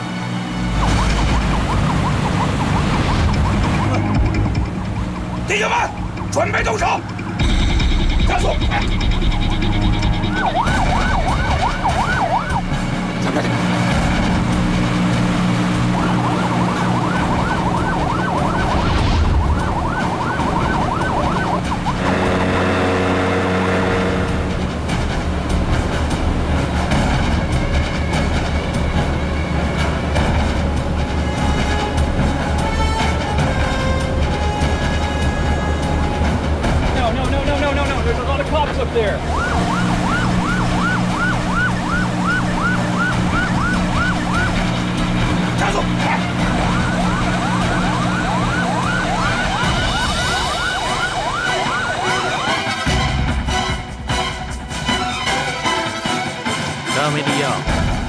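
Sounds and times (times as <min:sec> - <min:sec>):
tense music with steady pulse: 0:00.0 - 0:58.0
boat siren yelping: 0:00.5 - 0:24.8, 0:38.3 - 0:53.5.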